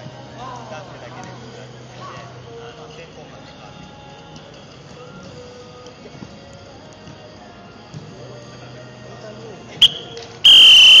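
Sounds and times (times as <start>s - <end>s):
referee's whistle blasts: 9.8s - 11.0s.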